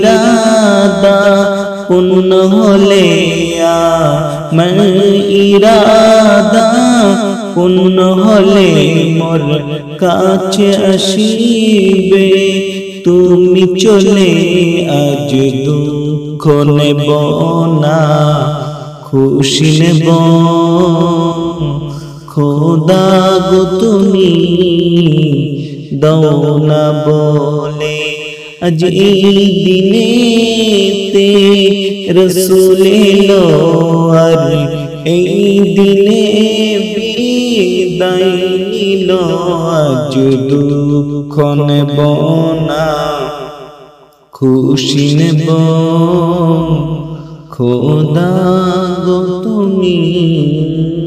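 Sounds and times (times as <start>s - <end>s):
person singing devotional song: 0.0s - 51.0s.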